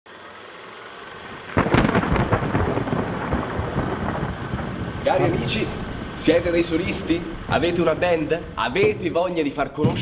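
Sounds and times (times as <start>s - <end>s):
faint rumble: 1.2s - 10.0s.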